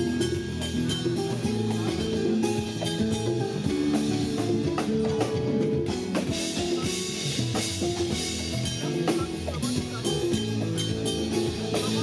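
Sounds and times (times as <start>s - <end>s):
drum kit: 0.0s - 12.0s
electric guitar: 0.0s - 12.0s.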